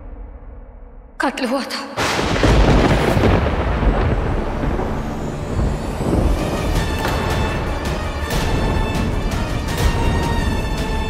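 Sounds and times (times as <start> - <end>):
deep rumbling boom: 2.0 - 10.7.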